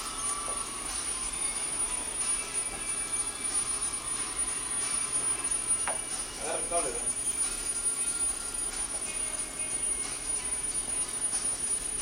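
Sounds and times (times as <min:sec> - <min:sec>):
thin high-pitched whine: 0:00.0 - 0:12.0.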